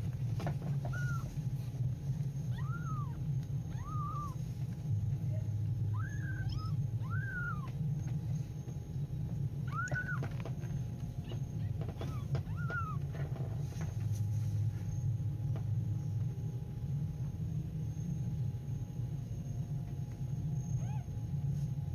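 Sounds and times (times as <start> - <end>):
low hum: 0.0 - 21.9
kittens mewing: 0.8 - 1.6, 2.4 - 4.5, 5.9 - 7.9, 9.6 - 13.4, 20.8 - 21.2.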